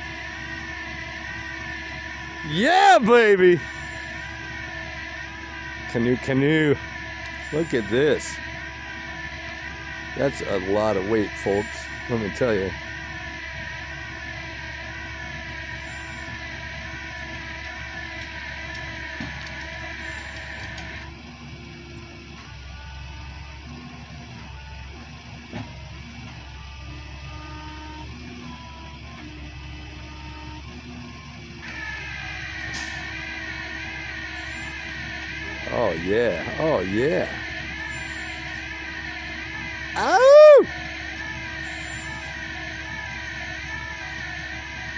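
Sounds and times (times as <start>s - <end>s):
truck engine running: 0.0s - 44.9s.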